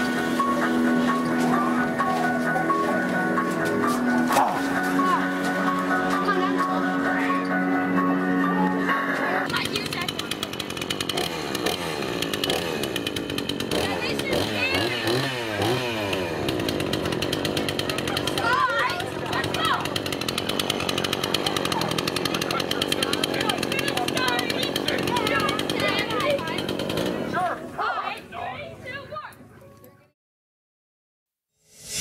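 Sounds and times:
people's voices: 0.0 - 10.6, 17.7 - 20.1, 20.7 - 30.1
chainsaw engine running: 0.0 - 27.8.

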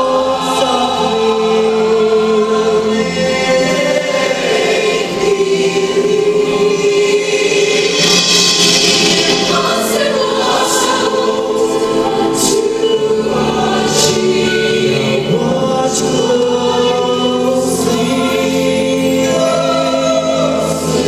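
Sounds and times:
mixed choir singing sustained notes: 0.0 - 21.0.

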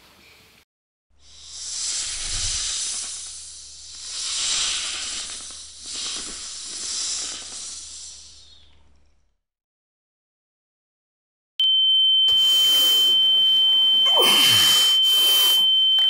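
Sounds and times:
steady low hum: 1.2 - 9.4
rushing hiss: 1.3 - 8.5.

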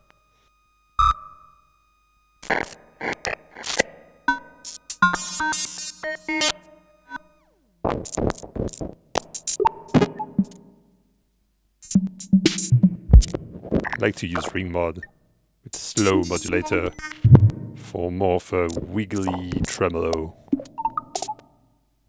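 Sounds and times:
ringing pitched drum hits: 17.3 - 18.0.

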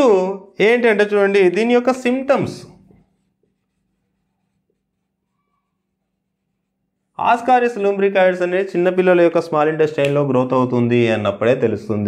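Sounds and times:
marker writing on whiteboard: 2.0 - 7.2.

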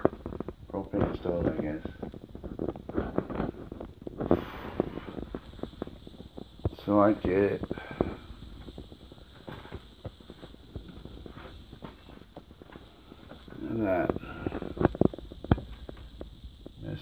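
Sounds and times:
footsteps and handling knocks: 8.0 - 16.3.

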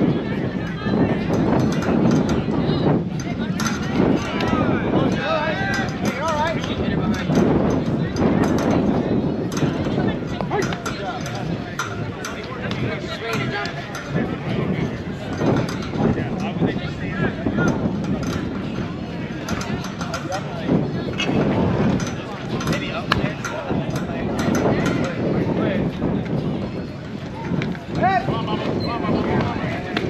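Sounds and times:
people talking and calling out: 0.0 - 30.0.

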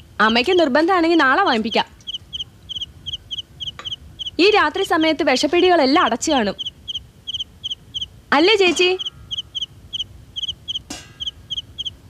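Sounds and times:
cricket chirping: 1.7 - 4.6, 6.6 - 8.1, 8.8 - 12.0.

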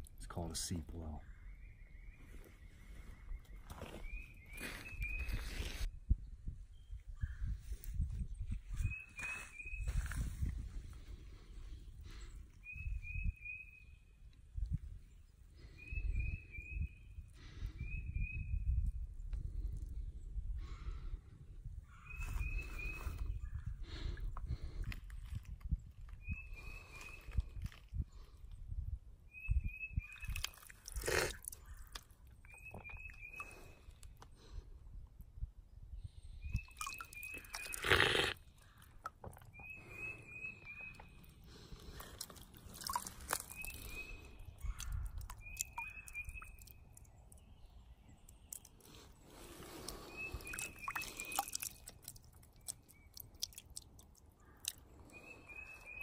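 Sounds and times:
crunching on gravelly ground: 41.6 - 44.3
bird calling: 42.9 - 46.8.

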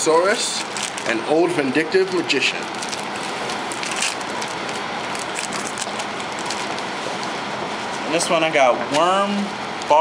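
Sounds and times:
foil packs and cards crackling: 0.4 - 1.2, 2.1 - 6.9.

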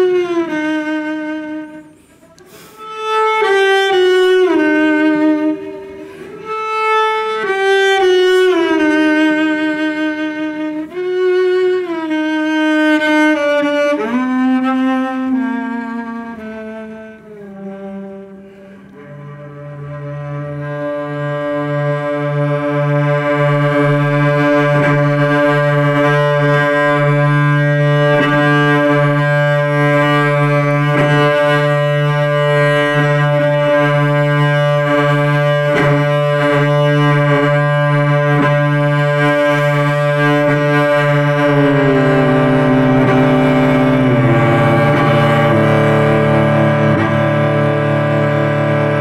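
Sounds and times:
bowed cello drone: 2.8 - 49.0.

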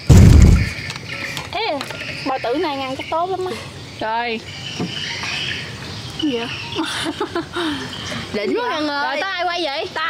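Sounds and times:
comic explosion boom: 0.0 - 0.8.

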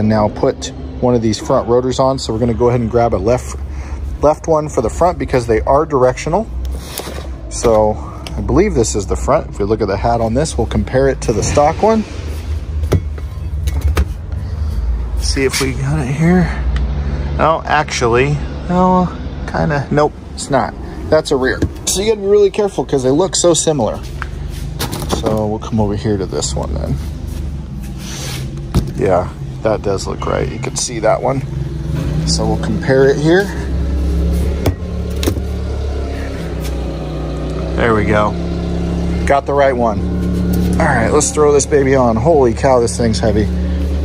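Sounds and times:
low rumble: 8.0 - 16.2.

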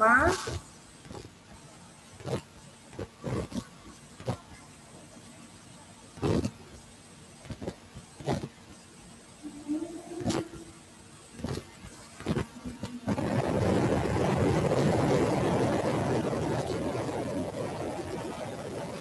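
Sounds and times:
low microphone hiss: 0.0 - 19.0.

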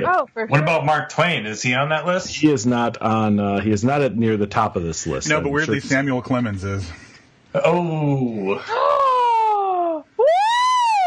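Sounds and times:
person groaning ooh: 7.6 - 10.0.

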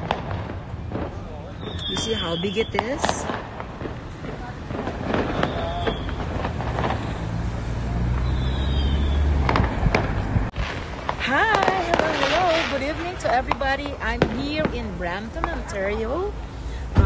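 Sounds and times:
firecracker bangs: 0.0 - 16.3.

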